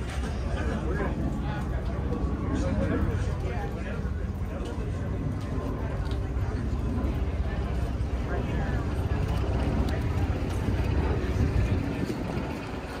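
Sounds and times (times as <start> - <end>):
people's voices: 0.0 - 13.0
wind rumbling on microphone: 0.0 - 13.0.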